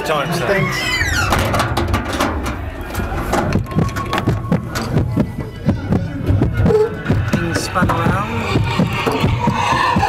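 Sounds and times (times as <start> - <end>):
low rumble: 0.4 - 10.0
knocks and thumps: 1.2 - 10.0.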